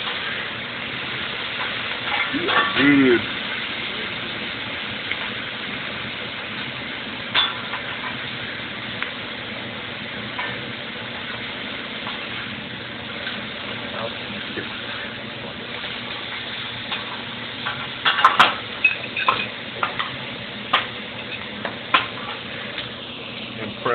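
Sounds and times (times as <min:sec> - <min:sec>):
food sizzling on griddle: 0:00.0 - 0:23.9.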